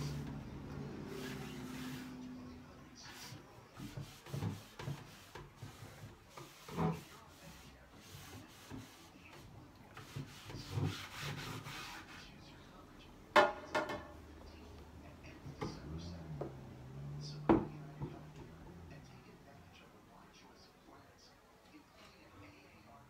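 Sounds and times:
cloth scrubbing wood: 0.0 - 12.4.

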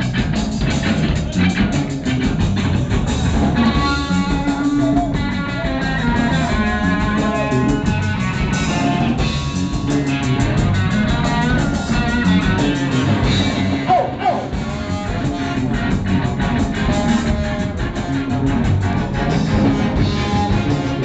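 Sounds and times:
live reggae band: 0.0 - 21.0.

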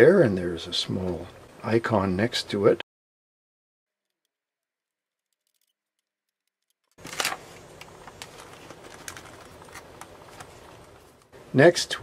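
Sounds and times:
hands handling things: 7.0 - 11.3
low room noise: 7.0 - 12.0.

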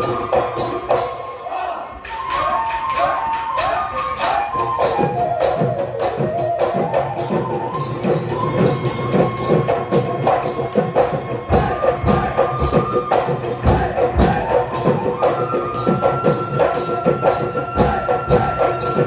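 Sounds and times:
dhol drums: 0.0 - 1.2, 2.0 - 19.0.

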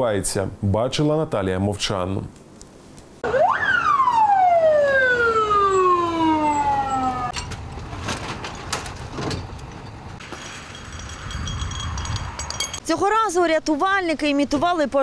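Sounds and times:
fire engine siren wail: 3.2 - 7.4
metallic clanks of equipment: 7.3 - 12.8.

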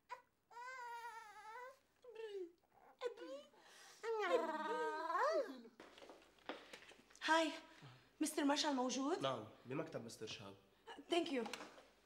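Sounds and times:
baby crying: 0.1 - 1.8.

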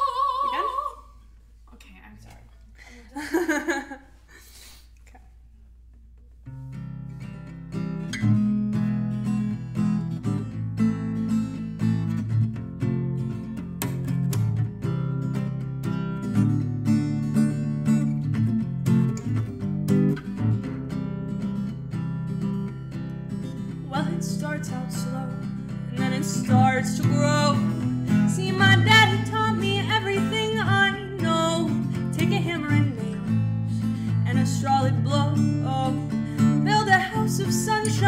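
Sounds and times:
acoustic guitar strumming chords: 6.4 - 38.0.

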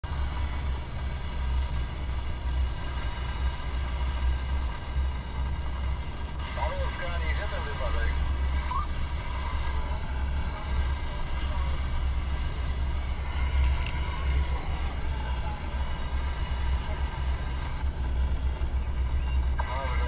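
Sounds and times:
faint steady whine: 0.0 - 20.0.

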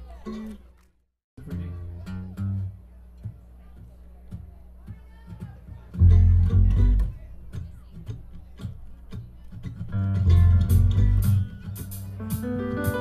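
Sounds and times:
acoustic guitar strums: 1.4 - 13.0
upright bass plucking low notes: 6.0 - 8.9, 9.7 - 13.0.

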